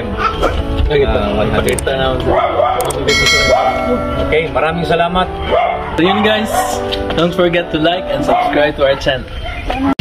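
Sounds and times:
background music: 0.0s - 10.0s
voices: 0.0s - 10.0s
bright ringing bell chime: 3.1s - 4.1s.

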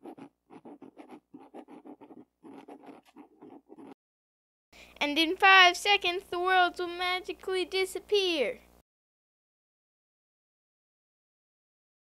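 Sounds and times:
pen writing on paper: 0.0s - 4.0s.

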